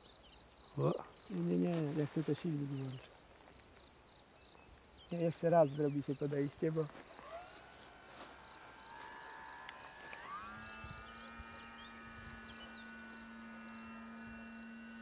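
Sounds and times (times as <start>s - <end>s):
high-pitched insect buzz: 0.0s - 15.0s
model glider motor whining: 5.1s - 15.0s.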